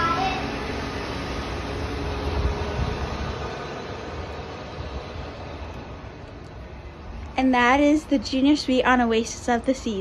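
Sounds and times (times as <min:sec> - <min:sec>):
wind on phone microphone: 0:02.2 - 0:03.7.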